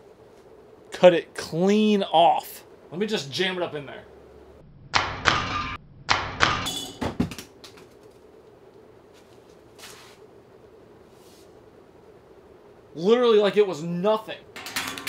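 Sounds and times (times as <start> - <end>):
ceiling fan running: 0.0 - 5.4, 6.1 - 15.0.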